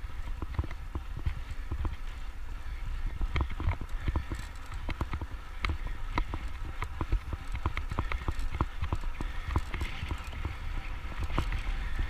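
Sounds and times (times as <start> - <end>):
bicycle clicks and rattles: 0.0 - 12.0
wind rumble on microphone: 0.0 - 12.0.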